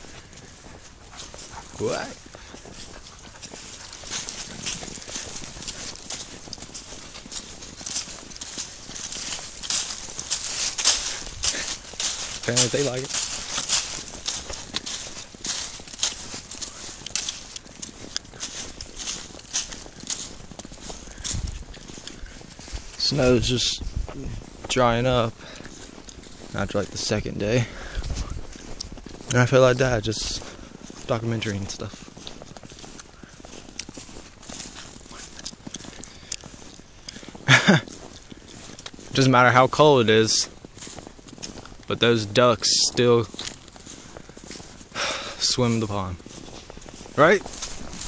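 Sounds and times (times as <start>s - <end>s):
footsteps crunching in snow: 0.0s - 48.0s.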